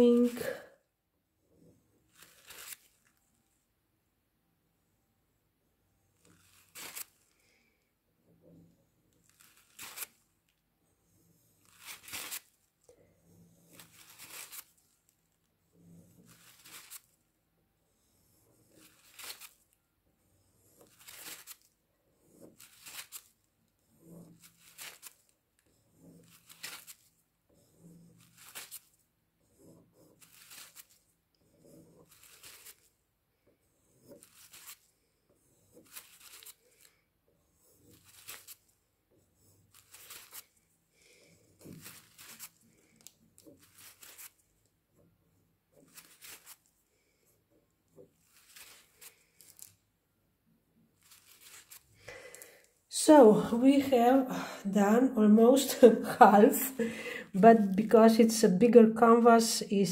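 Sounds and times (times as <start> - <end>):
stick scraping wet paint on canvas: 1.5 - 3.2, 6.1 - 49.8.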